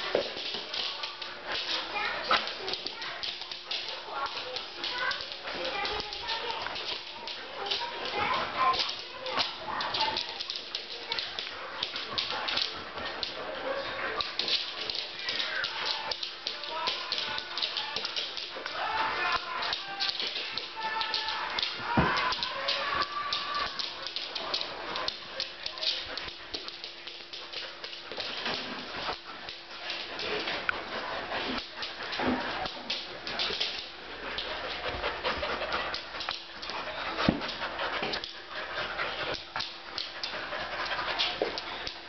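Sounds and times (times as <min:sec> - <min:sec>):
dogs scuffling: 0:00.0 - 0:42.0.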